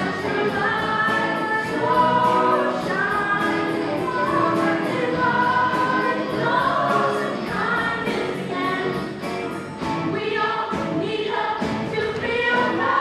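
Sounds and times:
musical accompaniment with beat: 0:00.0 - 0:13.0.

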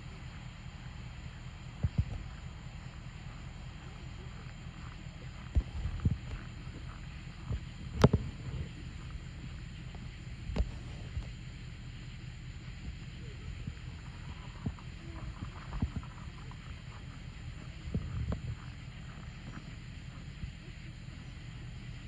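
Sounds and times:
wind on microphone: 0:01.6 - 0:11.4, 0:12.7 - 0:22.0.

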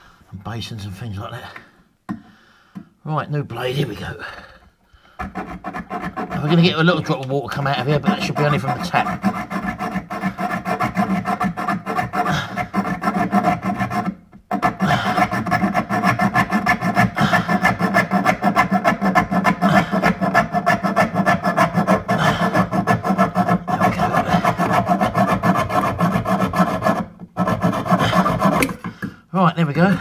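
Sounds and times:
hacksaw cutting metal pipe: 0:05.2 - 0:29.1.

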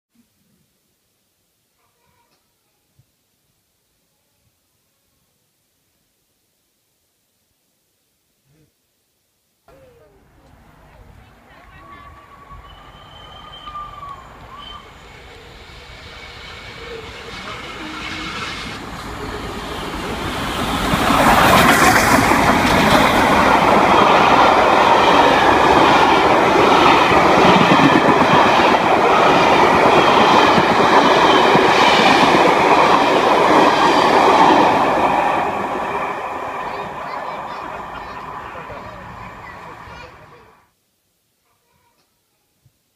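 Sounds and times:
steam train rumble passing: 0:10.5 - 0:40.6.

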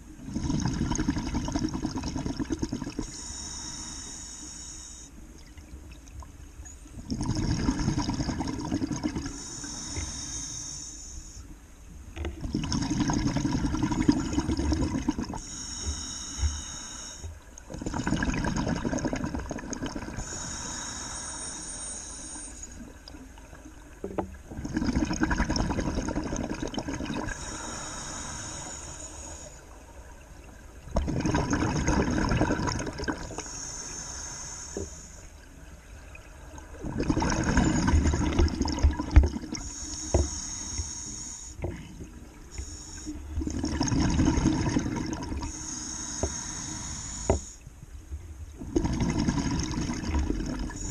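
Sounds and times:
bubbling regulator exhalation: 0:00.2 - 0:03.8, 0:07.0 - 0:10.2, 0:12.4 - 0:16.8, 0:17.7 - 0:21.2, 0:24.5 - 0:29.5, 0:30.9 - 0:33.7, 0:36.7 - 0:47.6, 0:48.6 - 0:50.9
hiss of inhalation: 0:03.0 - 0:05.2, 0:09.3 - 0:11.5, 0:15.4 - 0:17.3, 0:20.2 - 0:22.8, 0:27.3 - 0:29.7, 0:33.3 - 0:35.3, 0:39.6 - 0:41.7, 0:42.5 - 0:43.4, 0:45.4 - 0:47.6.

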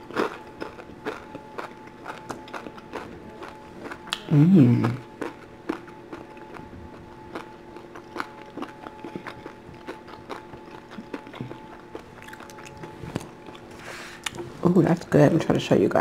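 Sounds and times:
faint steady hum with tones: 0:00.0 - 0:16.0
clicking chewing mouth sounds: 0:00.1 - 0:06.7, 0:07.3 - 0:13.6.

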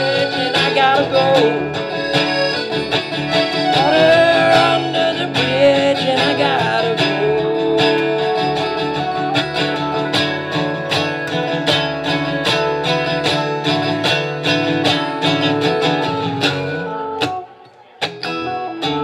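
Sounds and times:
woodwind lead melody: 0:00.0 - 0:14.0
upright bass: 0:00.0 - 0:17.0
acoustic guitar strumming: 0:00.0 - 0:19.0.

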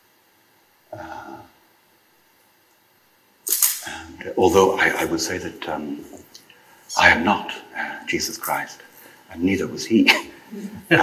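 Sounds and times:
man talking: 0:03.8 - 0:06.3, 0:06.9 - 0:11.0.

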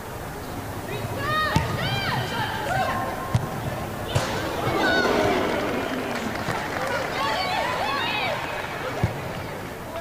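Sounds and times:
open-air hiss: 0:00.0 - 0:10.0
footballers calling out: 0:01.0 - 0:09.7.

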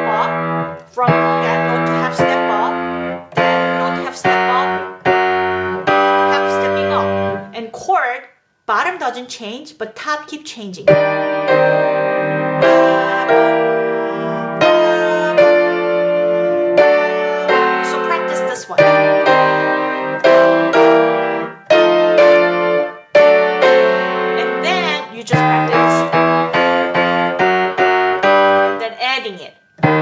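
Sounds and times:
piano chords over moving bass: 0:00.0 - 0:07.5, 0:10.9 - 0:28.8, 0:29.8 - 0:30.0.

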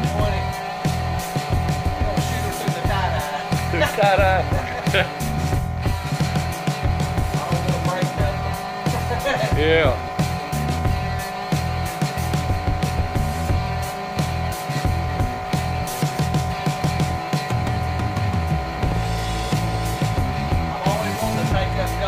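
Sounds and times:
air compressor running: 0:00.0 - 0:22.0
music playing: 0:00.0 - 0:22.0.

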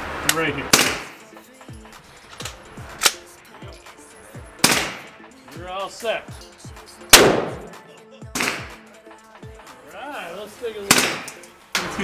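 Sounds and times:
gunshot: 0:00.7 - 0:01.2, 0:04.6 - 0:05.1, 0:07.1 - 0:07.8, 0:08.4 - 0:08.8, 0:10.9 - 0:11.4
music with bass beat: 0:01.2 - 0:09.9.

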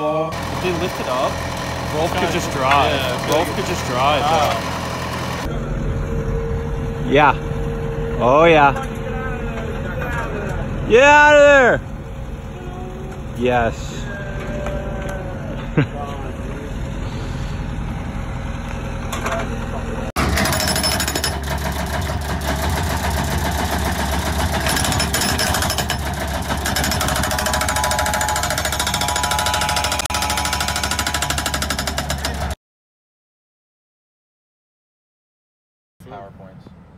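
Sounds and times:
hydraulic breaker hammering concrete: 0:00.3 - 0:05.5, 0:20.2 - 0:32.6
low engine hum: 0:00.3 - 0:10.9, 0:11.5 - 0:20.2
person laughing: 0:14.0 - 0:16.4.

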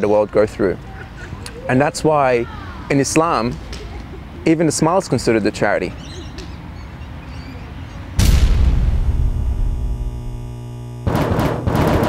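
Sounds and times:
low background rumble: 0:08.2 - 0:11.0.

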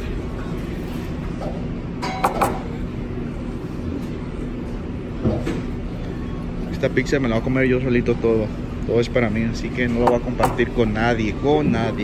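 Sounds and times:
restaurant room hum: 0:00.0 - 0:12.0.

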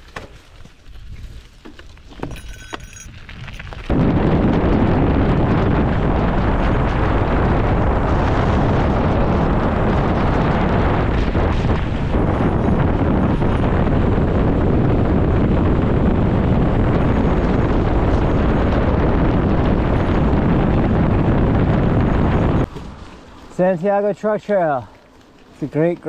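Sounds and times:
wind buffeting microphone: 0:03.0 - 0:23.0.

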